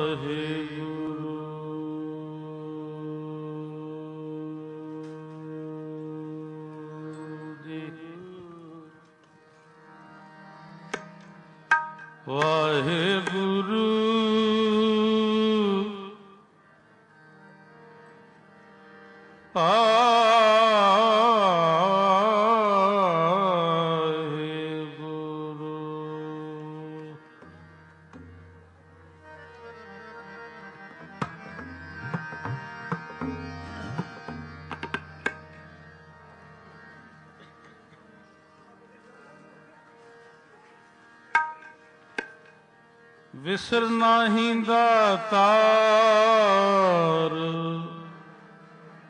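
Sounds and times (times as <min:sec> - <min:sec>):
harmonium drone chord: 0:00.0 - 0:49.0.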